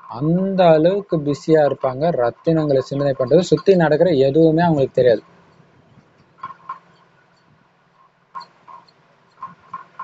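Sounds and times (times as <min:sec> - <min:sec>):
bird chirping: 0:00.0 - 0:10.0.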